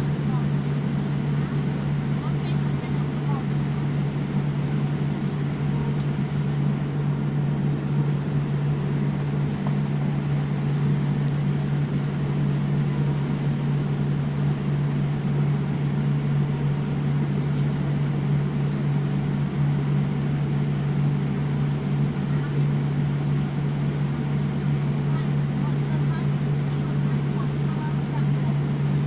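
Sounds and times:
jet engines roaring at takeoff: 0.0s - 29.0s.

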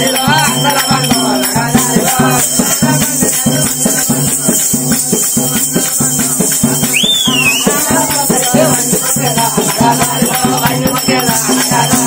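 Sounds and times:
fast drum rhythm: 0.0s - 12.0s.

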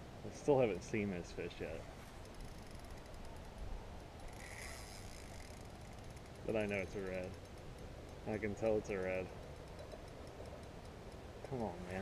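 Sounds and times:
fishing reel clicking: 1.4s - 12.0s.

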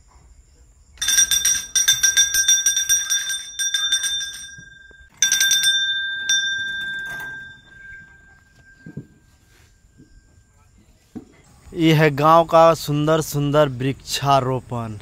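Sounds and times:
small brass bell ringing rapidly: 1.0s - 9.5s.

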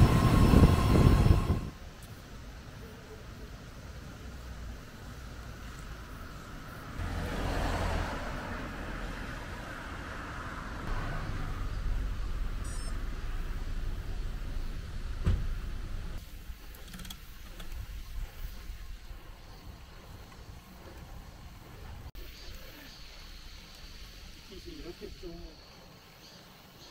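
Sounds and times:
car passing: 0.0s - 1.8s, 4.2s - 16.2s
outdoor ambience: 0.0s - 26.9s.

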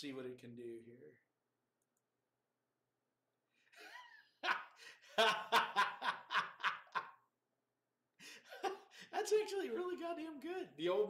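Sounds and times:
person laughing: 3.8s - 7.2s, 8.2s - 9.2s.

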